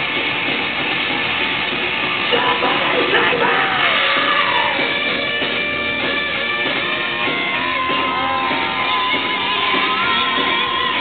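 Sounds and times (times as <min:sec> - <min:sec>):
rock band playing live: 0:00.0 - 0:11.0
shouted sung lead vocal: 0:02.3 - 0:05.0.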